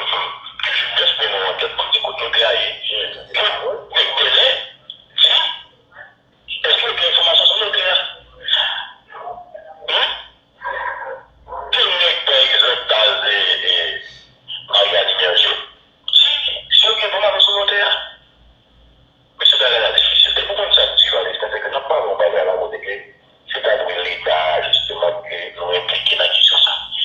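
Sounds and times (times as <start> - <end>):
people talking: 0.0 - 18.2, 19.4 - 27.0.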